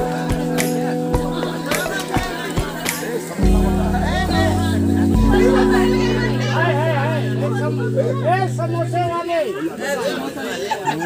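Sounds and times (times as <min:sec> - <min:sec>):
people talking at once: 0:00.0 - 0:11.0.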